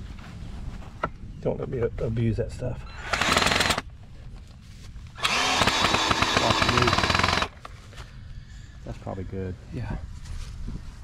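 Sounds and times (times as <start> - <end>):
power tool rattling: 3.1 - 3.8, 5.2 - 7.6.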